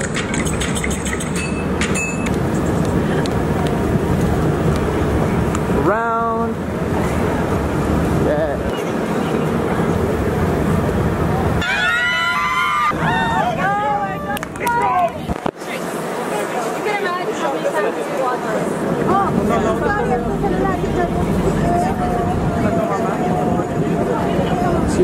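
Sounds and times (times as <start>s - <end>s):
crowd noise: 0.0s - 25.0s
traffic: 0.0s - 25.0s
voices: 2.7s - 25.0s.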